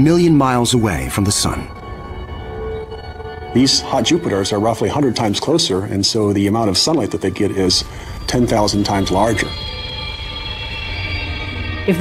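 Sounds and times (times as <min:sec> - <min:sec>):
ambient drone music: 0:00.0 - 0:12.0
low rumble: 0:00.0 - 0:12.0.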